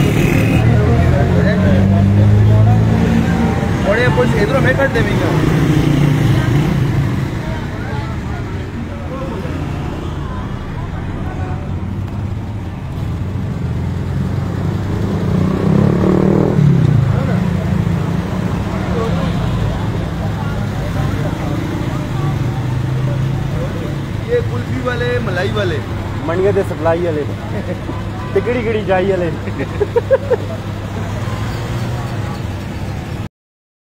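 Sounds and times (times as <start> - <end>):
car passing loudly: 0.0 - 27.5
car and motorcycle engines: 0.0 - 33.3
low traffic rumble: 0.0 - 33.3.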